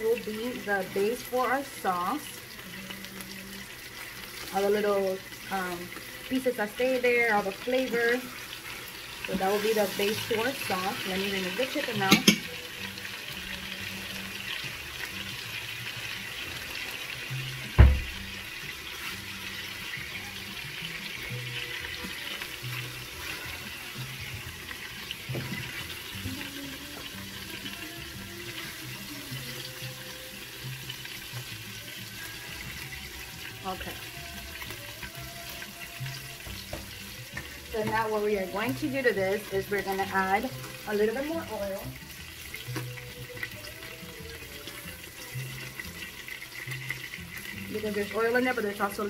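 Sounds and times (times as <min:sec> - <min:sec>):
chicken sizzling in oil: 0:00.0 - 0:49.0
sharp knock: 0:17.8 - 0:18.1.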